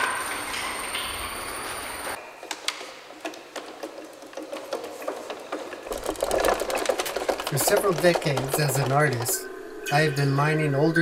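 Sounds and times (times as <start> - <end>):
wooden gears clicking and knocking: 2.4 - 9.5.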